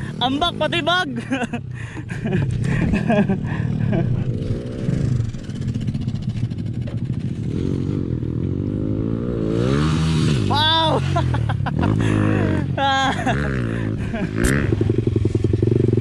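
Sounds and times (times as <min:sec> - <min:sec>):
dirt bike engine revving: 0:02.2 - 0:16.0.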